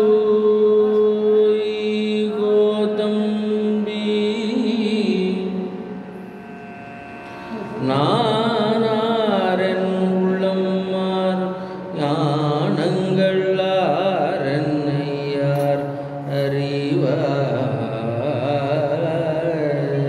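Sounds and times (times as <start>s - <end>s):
man singing a devotional hymn: 0.0s - 5.6s, 7.8s - 20.0s.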